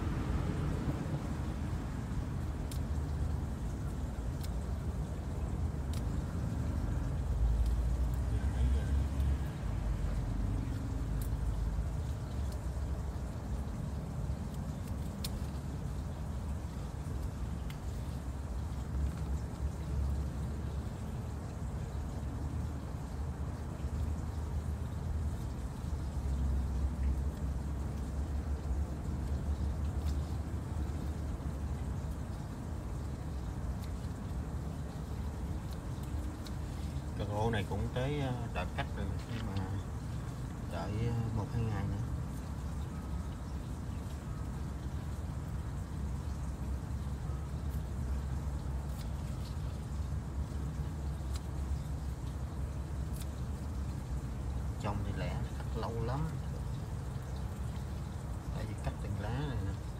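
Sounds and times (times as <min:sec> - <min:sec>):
low outdoor rumble: 0:00.0 - 0:59.9.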